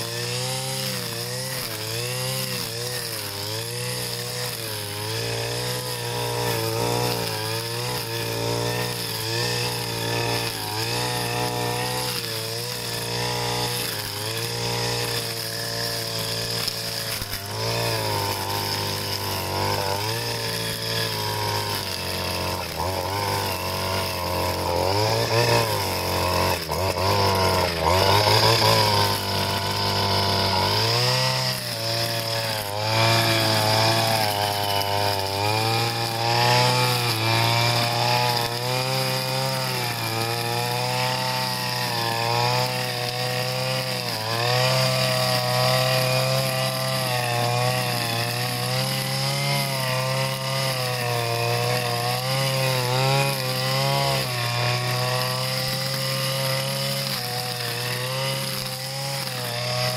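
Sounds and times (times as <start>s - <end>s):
brush cutter cutting grass: 0.0s - 59.9s.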